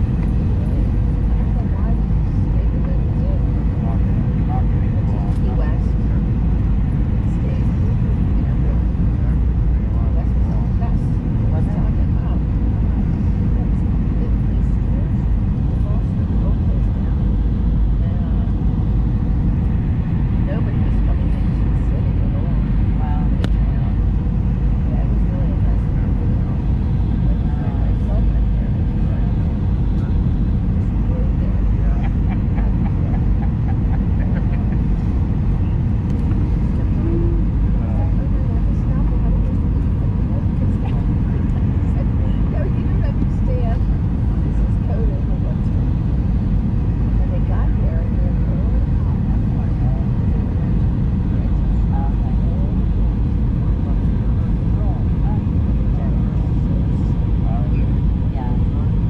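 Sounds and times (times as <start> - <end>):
faint steady hum: 0.0 - 59.0
jet engines rumbling: 0.0 - 59.0.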